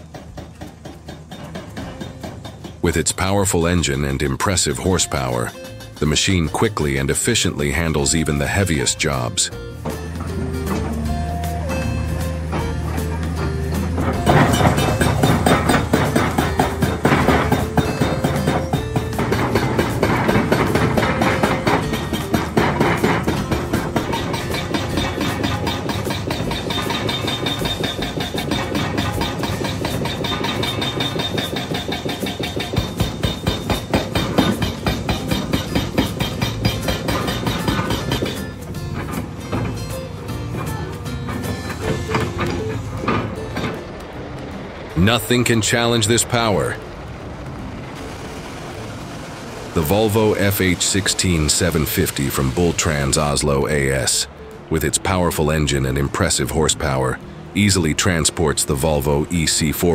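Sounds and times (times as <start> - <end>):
hydraulic breaker hammering rock: 0.0 - 46.9, 48.0 - 59.9
background music: 1.0 - 59.9.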